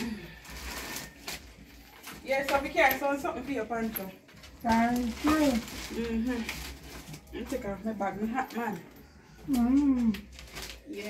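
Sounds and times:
plastic bag rustling: 0.0s - 9.0s, 9.8s - 11.0s.

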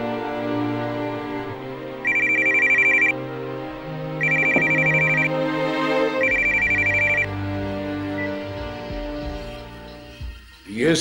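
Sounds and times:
background music: 0.0s - 11.0s
telephone electronic trilling ring: 2.0s - 3.2s, 4.2s - 5.4s, 6.2s - 7.3s.

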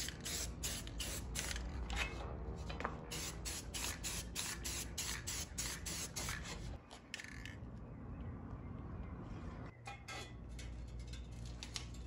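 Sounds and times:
spray can short bursts: 3.1s - 6.4s.

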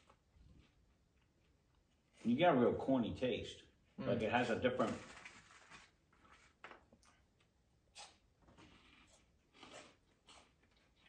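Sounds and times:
crunching and chewing snacks: 7.0s - 11.0s.

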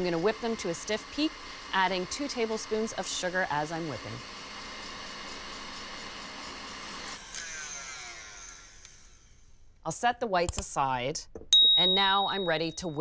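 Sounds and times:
stand mixer whisking: 0.0s - 7.1s.

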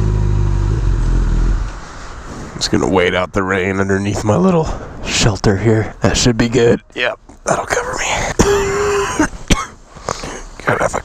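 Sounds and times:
man clearing throat: 8.4s - 11.0s.

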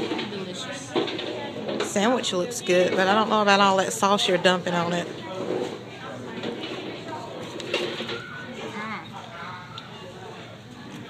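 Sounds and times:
people talking indistinctly: 0.0s - 10.7s.

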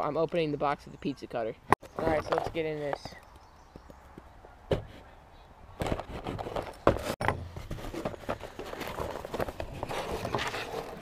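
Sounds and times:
cardboard scraping and rustling: 5.8s - 11.0s.

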